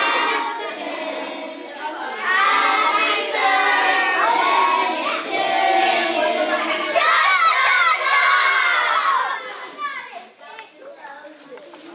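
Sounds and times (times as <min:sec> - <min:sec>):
young children shouting and cheering: 0:00.0 - 0:10.8.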